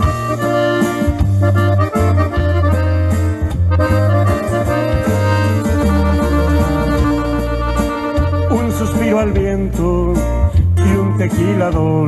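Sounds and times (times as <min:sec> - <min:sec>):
button accordion melody: 0:00.0 - 0:10.7
backing track with bass line: 0:00.0 - 0:12.0
person singing: 0:05.6 - 0:07.7, 0:08.4 - 0:12.0.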